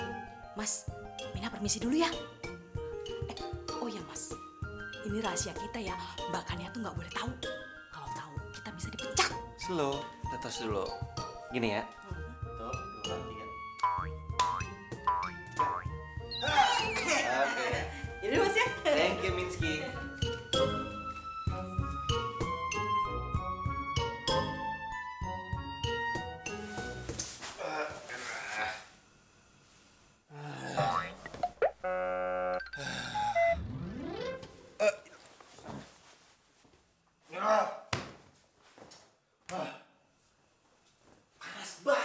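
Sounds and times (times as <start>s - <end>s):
buzzy honk: 31.5s - 32.7s
rising slide whistle: 31.8s - 32.7s.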